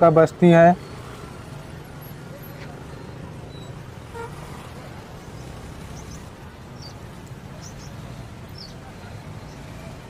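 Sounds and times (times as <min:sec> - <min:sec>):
engine hum: 0:00.0 - 0:10.0
road noise: 0:00.0 - 0:10.0.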